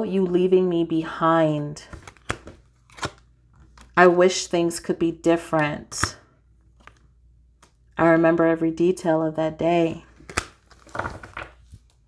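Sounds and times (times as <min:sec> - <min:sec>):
cards rustling and clicking: 0:01.9 - 0:04.0.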